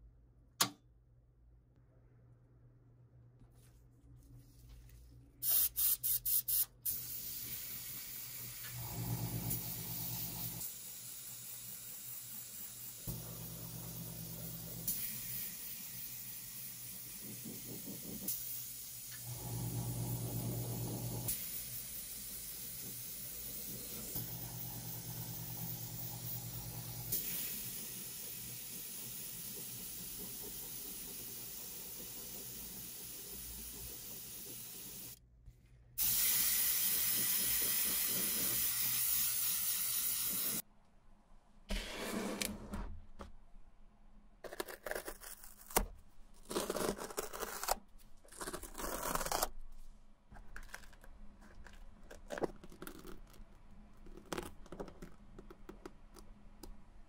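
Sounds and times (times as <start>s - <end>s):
airbrush hissing: 5.4s - 8.7s, 36.0s - 40.6s.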